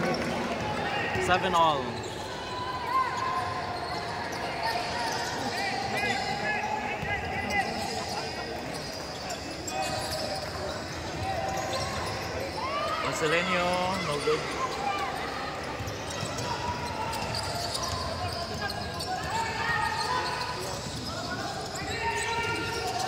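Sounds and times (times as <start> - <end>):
murmur of crowd voices: 0.0 - 23.0
sneaker squeaks: 0.0 - 23.0.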